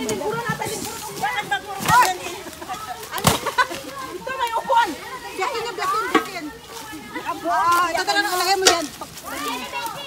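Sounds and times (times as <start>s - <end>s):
people chattering and calling: 0.0s - 10.0s.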